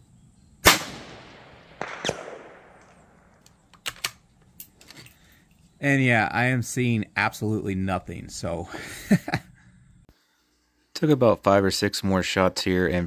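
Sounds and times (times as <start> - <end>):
rifle shot with echo: 0.6 - 3.3.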